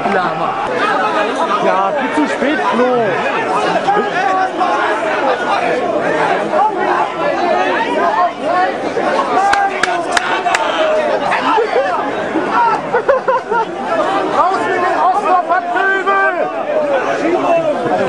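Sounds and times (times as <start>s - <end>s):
crowd babble: 0.0s - 18.0s.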